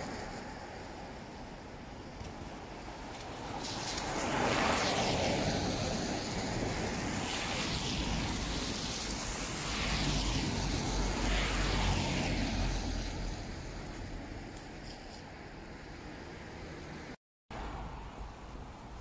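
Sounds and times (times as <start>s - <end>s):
tyres hissing on wet road: 0.0s - 19.0s.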